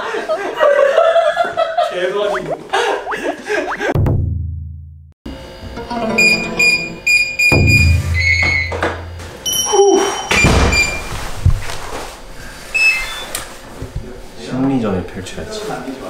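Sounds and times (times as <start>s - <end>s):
comic plucked music: 5.6s - 8.4s.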